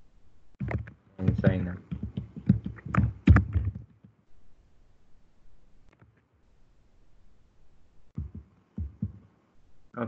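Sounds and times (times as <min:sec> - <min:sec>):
soft low thumps: 0:00.6 - 0:04.2, 0:08.2 - 0:09.3.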